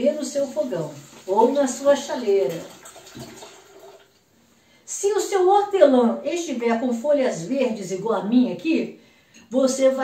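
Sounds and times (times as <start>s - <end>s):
water trickling into kettle: 0.0s - 4.2s.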